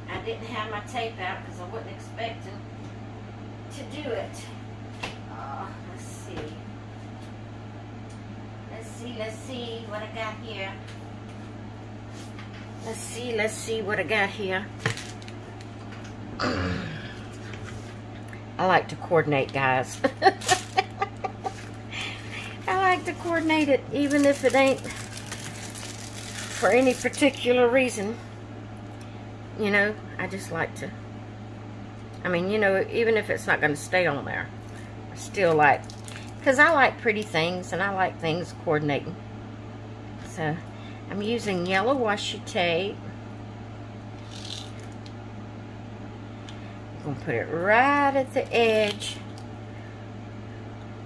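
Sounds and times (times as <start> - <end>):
woman speaking: 0.0 - 2.7, 3.7 - 4.6, 5.3 - 6.7, 8.7 - 10.9, 12.8 - 14.8, 18.6 - 25.2, 26.3 - 28.3, 29.6 - 31.0, 32.2 - 35.8, 36.4 - 39.2, 40.2 - 43.0, 47.0 - 49.3
steady low hum: 0.0 - 51.0.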